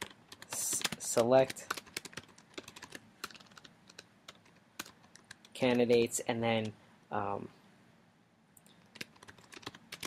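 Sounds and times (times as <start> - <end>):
computer keyboard keystrokes: 0.0 - 6.0, 8.9 - 10.0.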